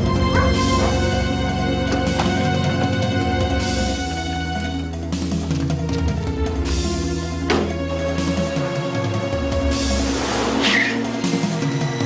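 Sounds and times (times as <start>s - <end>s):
car tyres on paving: 0.0s - 6.0s, 9.6s - 11.5s
film background music: 0.0s - 12.0s
tyre squeal: 10.6s - 11.1s.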